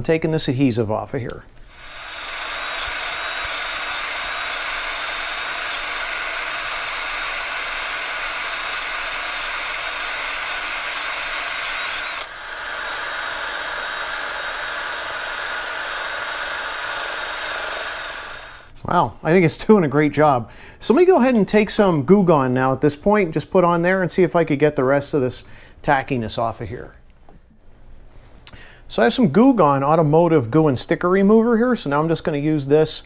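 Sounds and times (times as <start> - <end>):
drill motor whine: 1.7 - 18.7.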